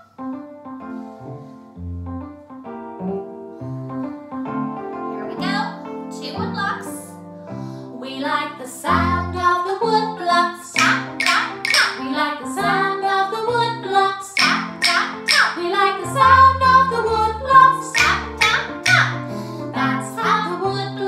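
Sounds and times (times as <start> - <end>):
woman singing: 8.0 - 19.2, 19.8 - 21.0
backing music: 10.8 - 12.3, 14.4 - 20.6
wooden rhythm sticks tapping: 10.8 - 12.3, 14.3 - 19.3.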